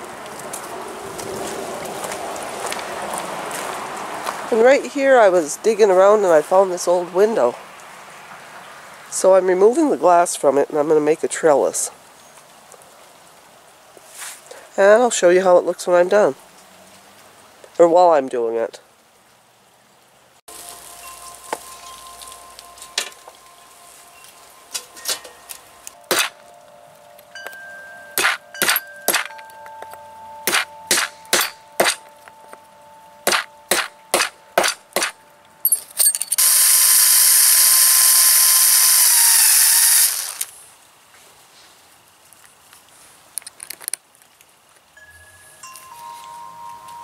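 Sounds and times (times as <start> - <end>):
hammer striking steel plate: 26.1 - 26.4, 28.2 - 29.5, 30.4 - 32.1, 33.2 - 35.2
power drill driving screw: 36.3 - 40.5.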